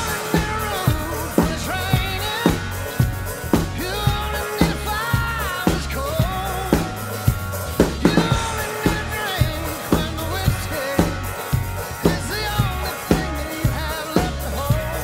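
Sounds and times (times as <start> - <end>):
country-rock song: 0.0 - 15.0
drum kit playing: 0.0 - 15.0.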